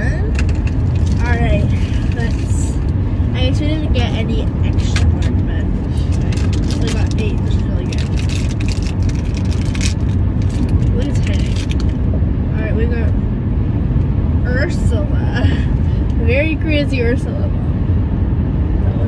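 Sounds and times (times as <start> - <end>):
car cabin road rumble: 0.0 - 19.0
plastic packaging crinkling: 6.3 - 12.0.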